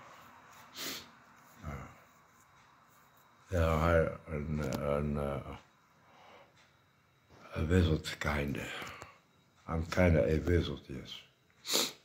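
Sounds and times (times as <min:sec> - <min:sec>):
man breathing sharply through nose: 0:00.0 - 0:01.2, 0:06.0 - 0:06.7, 0:11.6 - 0:12.0.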